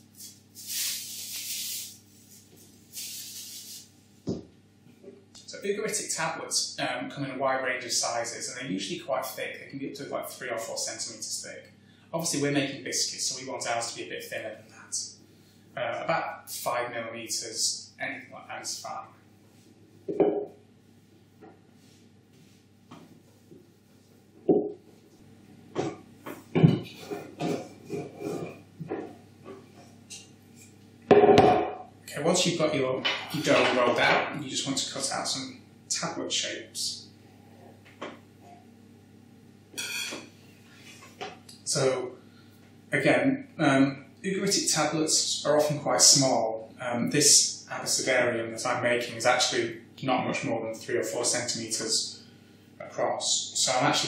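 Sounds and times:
thuds on table: 25.8 - 26.9, 31.1 - 31.8.

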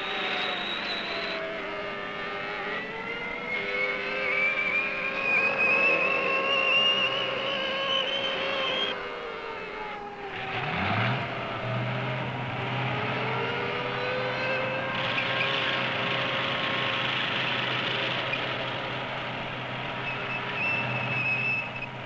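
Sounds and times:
low engine note: 0.0 - 22.0.

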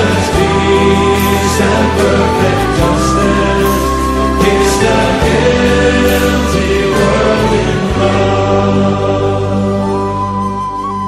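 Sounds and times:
choir holding sustained notes: 0.0 - 11.0
instrumental accompaniment: 0.0 - 11.0.

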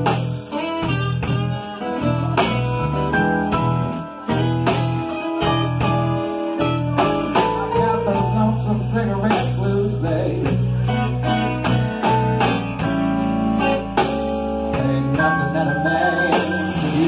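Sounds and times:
electric guitar lines: 0.0 - 17.0
live blues band playing: 0.0 - 17.0.

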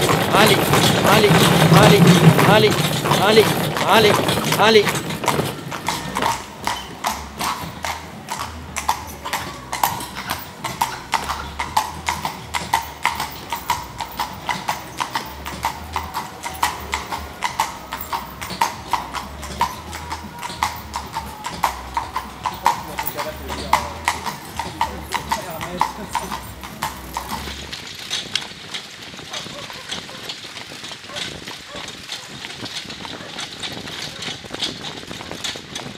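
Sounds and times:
horse hooves on pavement: 0.0 - 35.9.

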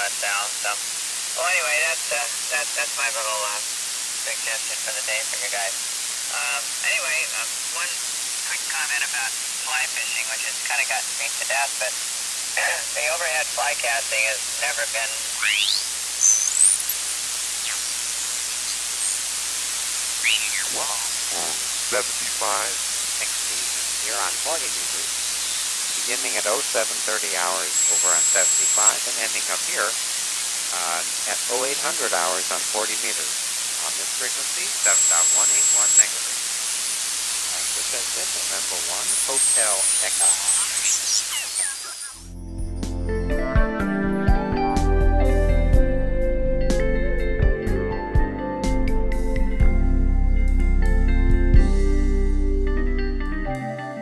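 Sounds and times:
garbled radio voice: 0.0 - 0.8, 1.4 - 3.6, 4.3 - 12.0, 12.6 - 15.9, 20.2 - 25.3, 25.9 - 30.0, 30.7 - 36.4, 37.5 - 42.2
shortwave static hiss: 0.0 - 42.3
sliding radio whistles: 15.2 - 19.4, 20.1 - 22.6, 27.7 - 29.8, 34.8 - 36.2, 37.7 - 42.3.

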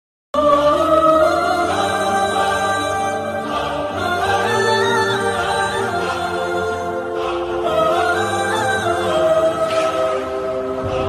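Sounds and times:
voices singing together: 0.4 - 11.0.

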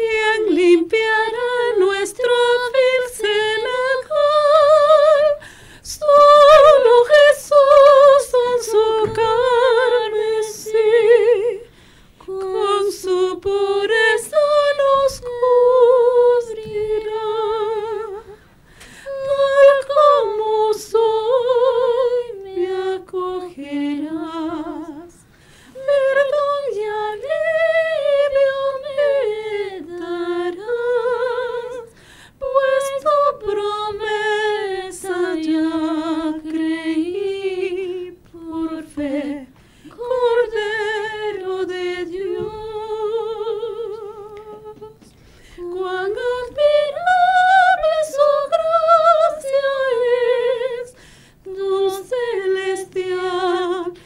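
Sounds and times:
women singing unaccompanied: 0.0 - 54.0.

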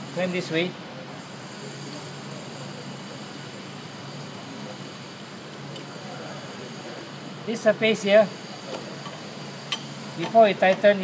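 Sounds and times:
machine shop hum: 0.0 - 11.0.

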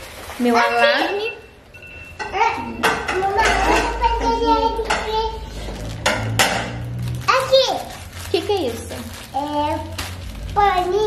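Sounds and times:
dishes clattering in a sink: 2.2 - 5.2, 6.0 - 6.8
indistinct voices: 2.2 - 11.0.

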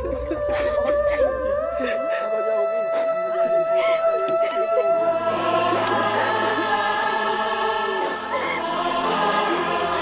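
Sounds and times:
choir singing held notes: 5.0 - 10.0.

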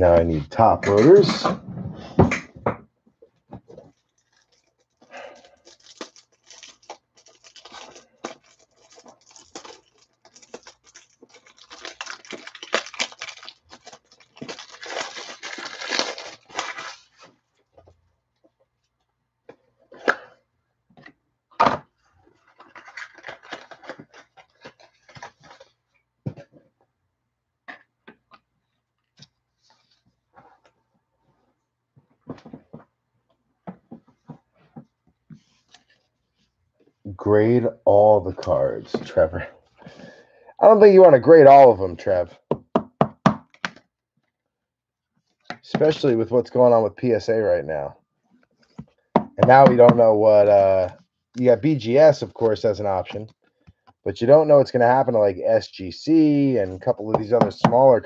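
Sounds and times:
plastic sleeves rustling and crinkling: 3.2 - 20.1, 21.9 - 26.8.

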